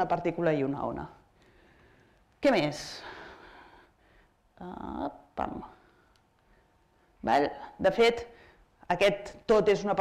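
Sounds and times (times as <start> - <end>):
person making wordless vocal sounds: 4.6 - 5.7.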